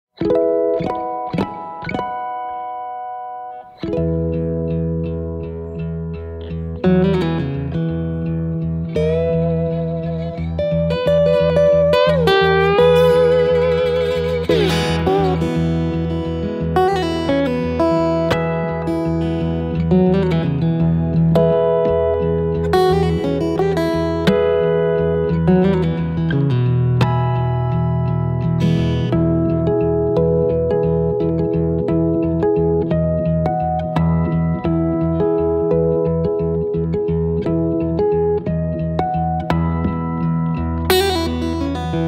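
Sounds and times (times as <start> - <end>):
slide acoustic guitar fingerpicking: 0.1 - 42.0.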